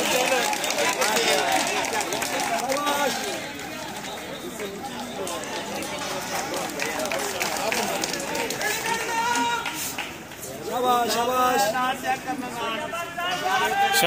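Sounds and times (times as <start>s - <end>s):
people talking at once: 0.0s - 14.0s.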